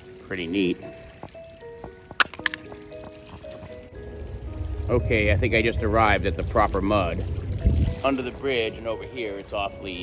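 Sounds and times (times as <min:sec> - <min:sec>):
background music with held notes: 0:00.0 - 0:10.0
saw blade striking stones: 0:02.2 - 0:02.6.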